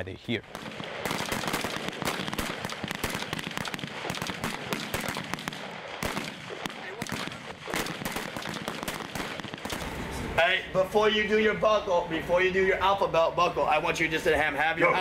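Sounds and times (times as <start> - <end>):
rifle shots: 0.4 - 10.1.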